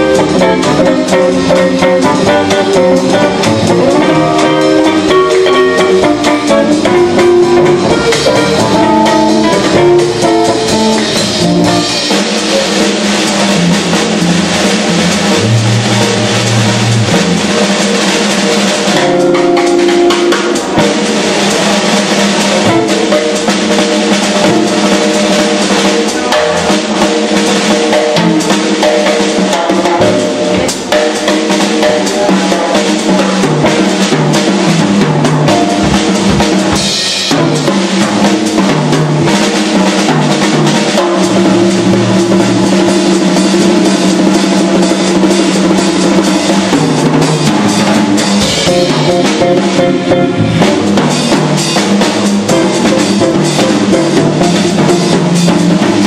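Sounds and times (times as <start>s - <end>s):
double bass low notes: 0.0s - 19.6s, 34.2s - 38.0s, 45.0s - 51.6s
electric guitar: 0.0s - 56.0s
snare and cymbal hits: 0.0s - 56.0s.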